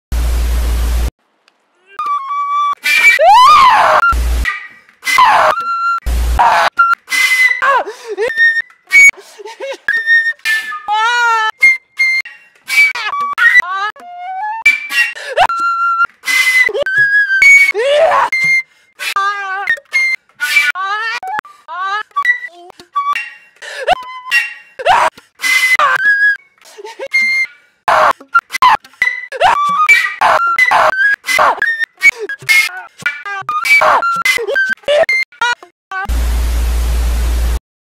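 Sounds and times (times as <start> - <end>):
flute notes: 1.9 - 4.2.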